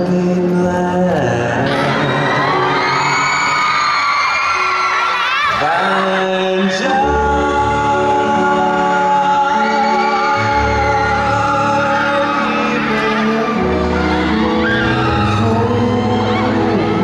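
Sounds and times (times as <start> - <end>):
man singing: 0.0 - 3.8, 5.5 - 17.0
fans whooping and screaming: 1.6 - 7.1, 9.0 - 17.0.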